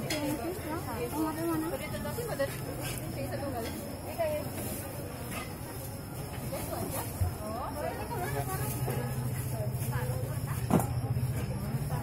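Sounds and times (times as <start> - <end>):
indistinct talk: 0.0 - 12.0.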